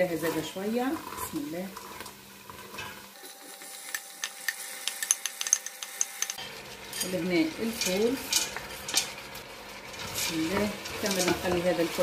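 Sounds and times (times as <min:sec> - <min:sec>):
vegetables sizzling in oil: 0:00.0 - 0:12.0
wooden spatula stirring: 0:06.6 - 0:12.0.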